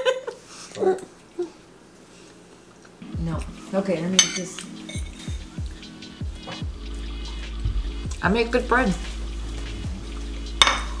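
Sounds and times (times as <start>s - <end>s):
metal fork clinking on plate: 4.2s - 5.4s.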